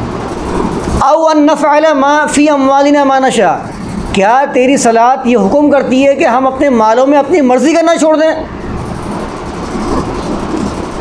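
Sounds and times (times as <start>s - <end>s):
noisy hiss: 0.0s - 11.0s.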